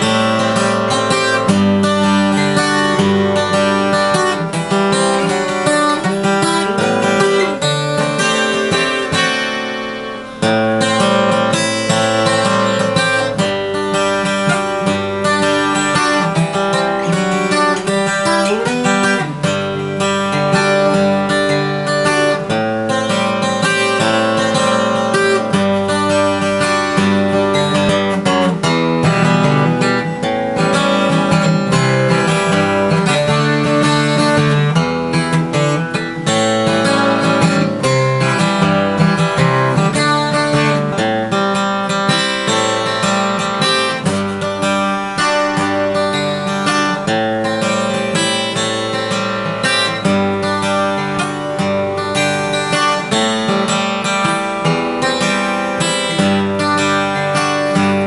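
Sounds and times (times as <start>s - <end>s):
acoustic guitar chords: 0.0s - 58.0s.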